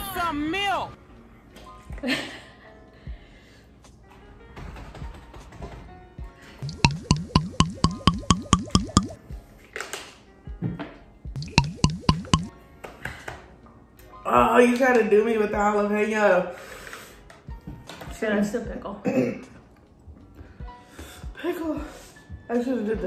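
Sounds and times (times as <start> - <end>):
water glugging from plastic bottle: 6.6 - 9.2.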